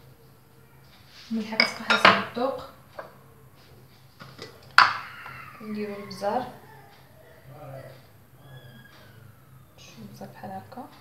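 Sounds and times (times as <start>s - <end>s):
utensils and bowls clinking: 1.5s - 2.4s, 4.2s - 6.6s.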